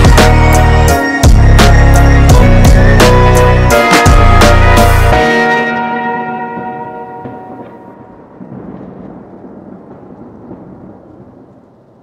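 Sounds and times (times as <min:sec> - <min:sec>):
rumbling thunder-like noise: 0:06.5 - 0:12.0.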